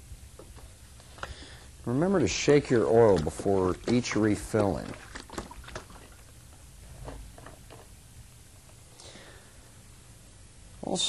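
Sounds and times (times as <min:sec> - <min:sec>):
plastic jug knocking and clattering: 0:03.0 - 0:06.2.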